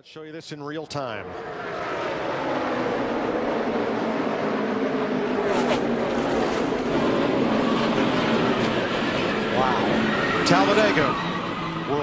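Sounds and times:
stock car engines drone: 1.0 - 12.0.

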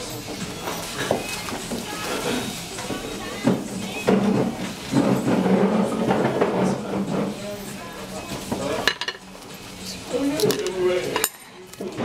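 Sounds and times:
dishes and cutlery clinking: 0.0 - 12.0
murmur of voices: 0.0 - 12.0.

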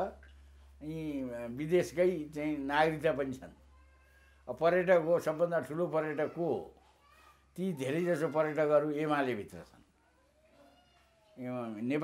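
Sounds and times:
man speaking: 0.8 - 3.6, 4.5 - 6.7, 7.6 - 9.8, 11.4 - 12.0.

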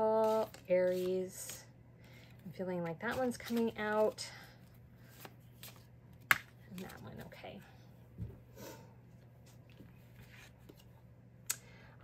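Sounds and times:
card rustle: 3.0 - 4.2.

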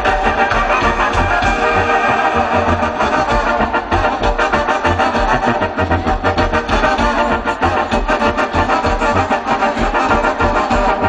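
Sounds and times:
live band music: 0.0 - 11.0
steady bass beat: 0.0 - 11.0.

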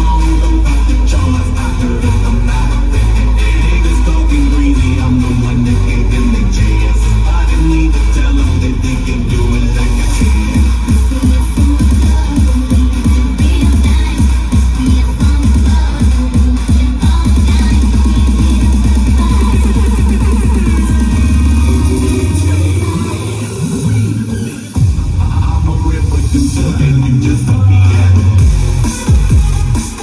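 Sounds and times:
electronic dance music: 0.0 - 30.0.

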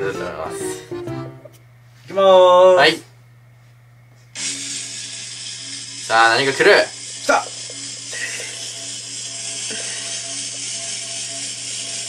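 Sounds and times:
rapid ratchet-like ticking: 4.4 - 12.0.

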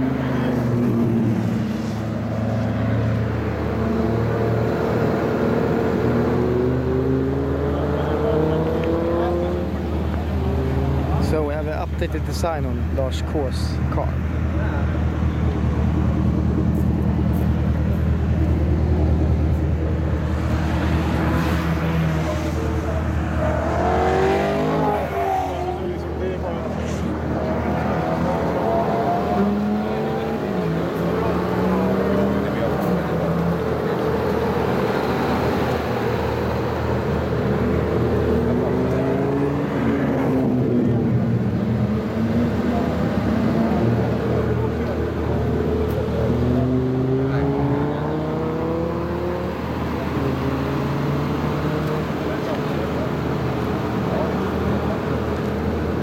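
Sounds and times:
people talking: 7.6 - 18.6, 21.9 - 36.6, 42.3 - 47.9, 49.5 - 56.0.

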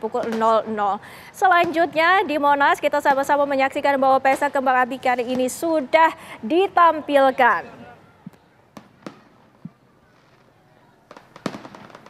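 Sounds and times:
fireworks bangs and pops: 0.0 - 0.7, 1.4 - 2.4, 8.3 - 12.0.

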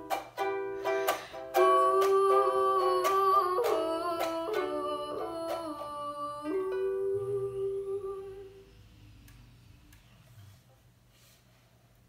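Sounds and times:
ukulele chord ringing: 0.0 - 8.6
girl singing: 1.0 - 8.9.

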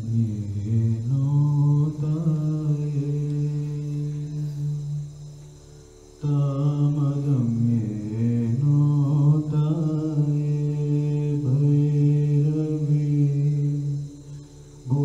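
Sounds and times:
man chanting in long notes: 0.0 - 5.3, 6.2 - 15.0.

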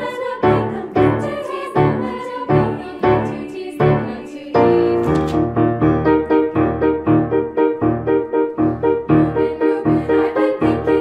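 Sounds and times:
piano playing repeated chords: 0.0 - 11.0.

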